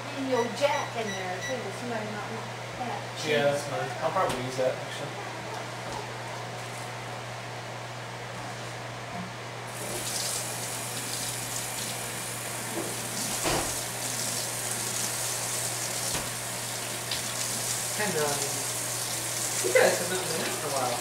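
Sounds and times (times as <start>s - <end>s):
water running into sink: 9.7s - 21.0s.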